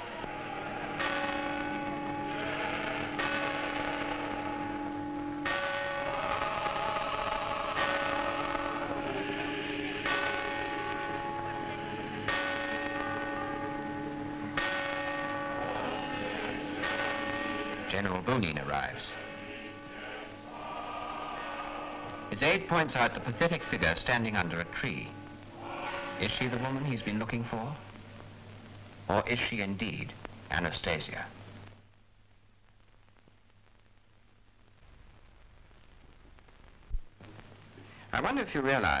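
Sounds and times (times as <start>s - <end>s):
church bells ringing: 0.2s - 7.0s, 7.7s - 20.3s, 21.3s - 27.7s.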